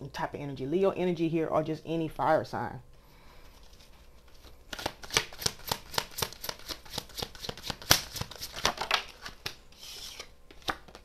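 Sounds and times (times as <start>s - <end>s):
cards being shuffled: 3.5s - 11.0s.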